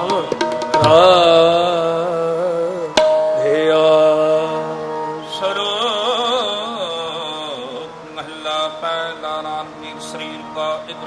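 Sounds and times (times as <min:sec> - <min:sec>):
tabla strokes: 0:00.0 - 0:03.8
harmonium chords: 0:00.0 - 0:11.0
man singing: 0:00.0 - 0:11.0.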